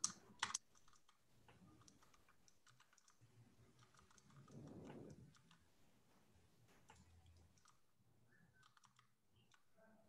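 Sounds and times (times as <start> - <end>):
soft low rustle: 3.3 - 7.5.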